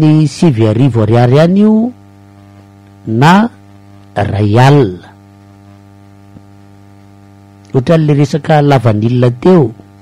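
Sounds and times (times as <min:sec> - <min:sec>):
person speaking: 0:00.0 - 0:02.0, 0:02.9 - 0:05.2, 0:07.6 - 0:10.0
electrical mains hum: 0:00.0 - 0:10.0.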